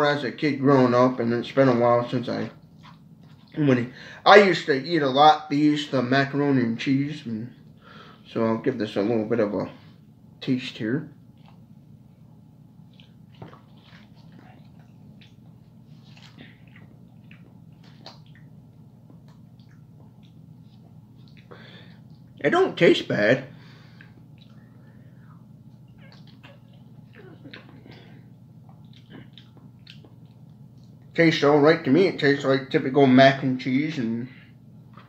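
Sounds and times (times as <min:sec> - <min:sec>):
man chewing wetly: 0:02.6 - 0:03.6, 0:11.2 - 0:22.4, 0:23.7 - 0:31.2.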